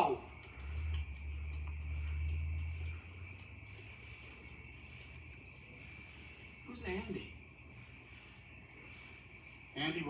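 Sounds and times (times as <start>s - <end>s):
crickets chirping: 0.0s - 10.0s.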